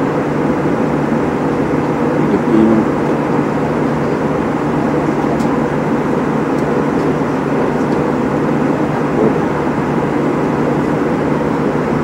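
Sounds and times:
airliner cabin rumble and hiss: 0:00.0 - 0:12.0.

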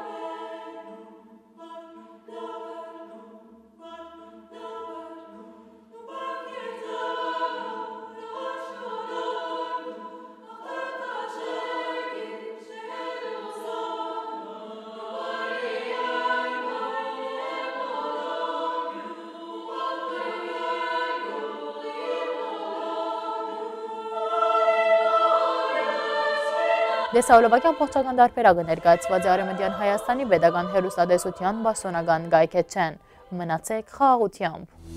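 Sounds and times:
women's choir singing chords: 0:00.0 - 0:34.9.

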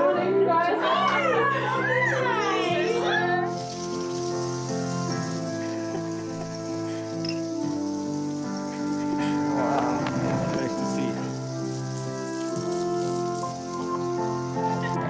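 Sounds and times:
voices: 0:00.0 - 0:03.6, 0:08.4 - 0:11.5
background music with held chords: 0:00.0 - 0:15.0.

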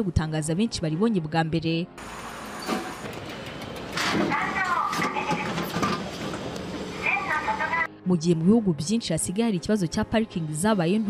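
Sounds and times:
machine mechanical rumble: 0:02.0 - 0:07.5
clicks and clunks: 0:02.6 - 0:06.8.

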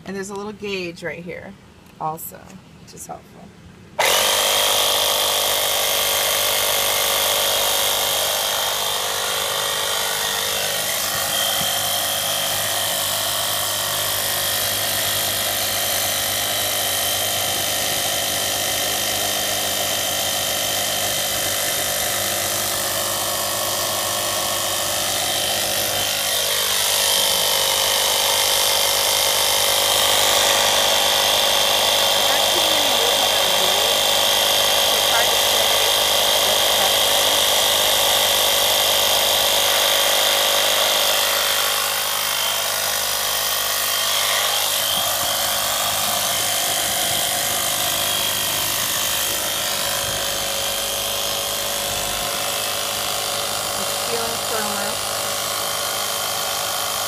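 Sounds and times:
air compressor motor whining: 0:04.0 - 0:57.0.

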